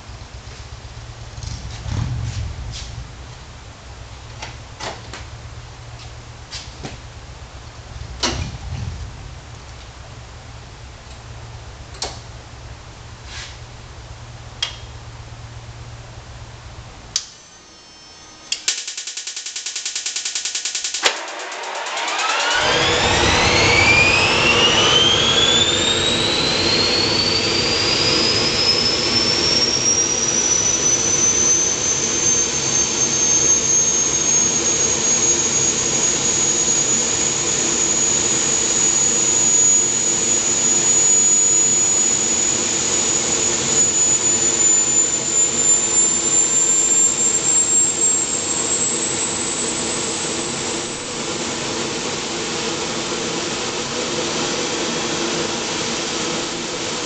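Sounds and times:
gas turbine engine whining: 0:00.0 - 0:19.3, 0:20.8 - 0:57.0.

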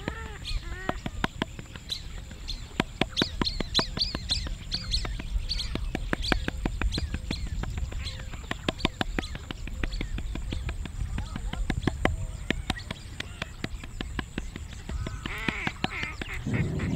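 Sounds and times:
hands patting dough: 0:00.0 - 0:16.5
small birds chirping: 0:00.0 - 0:16.9.

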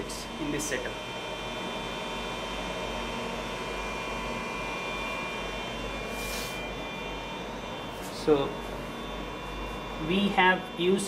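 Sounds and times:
electrical hum: 0:00.0 - 0:11.0
equipment fan noise: 0:00.0 - 0:11.0.

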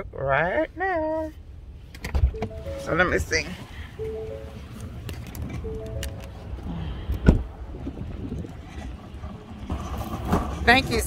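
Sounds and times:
electronic chime of stepped tones: 0:02.4 - 0:04.9
vehicle door being shut: 0:07.1 - 0:07.5.

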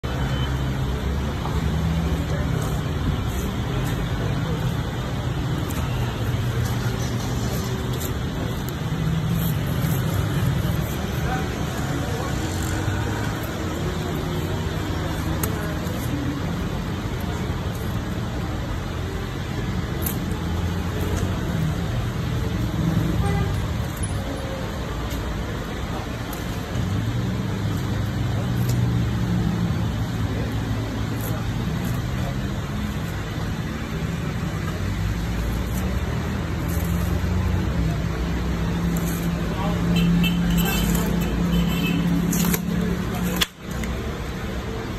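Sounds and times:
street traffic noise: 0:00.0 - 0:44.9
vehicle engines running: 0:00.0 - 0:44.9.

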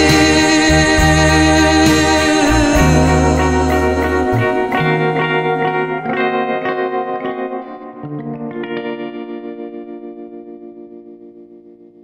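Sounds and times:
plucked guitar notes: 0:00.0 - 0:12.0
wavering guitar chord: 0:00.0 - 0:12.0.

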